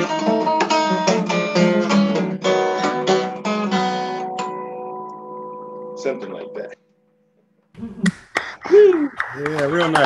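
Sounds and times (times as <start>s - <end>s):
acoustic guitar blues: 0.0s - 6.1s.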